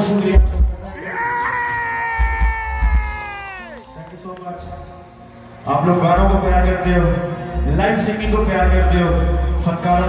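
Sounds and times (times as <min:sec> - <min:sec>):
crowd noise: 0:00.0 - 0:10.0
band playing: 0:02.1 - 0:04.3.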